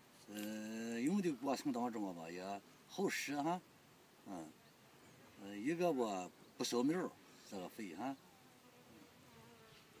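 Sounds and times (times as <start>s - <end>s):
flying insect buzzing: 8.5s - 10.0s.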